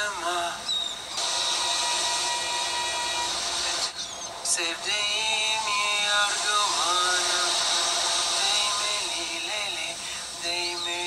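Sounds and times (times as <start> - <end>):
person singing: 0.0 - 0.7, 4.5 - 11.0
ocean waves rushing: 4.8 - 10.5.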